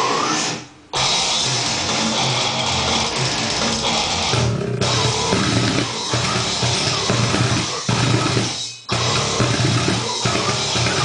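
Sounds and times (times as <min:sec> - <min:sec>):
death metal with drums: 0:00.0 - 0:11.0.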